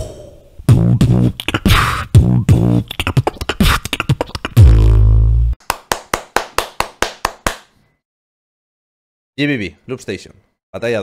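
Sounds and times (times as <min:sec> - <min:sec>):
beatboxed bass note: 0:00.0 - 0:05.6
beatboxed clap-like hits: 0:00.7 - 0:07.7.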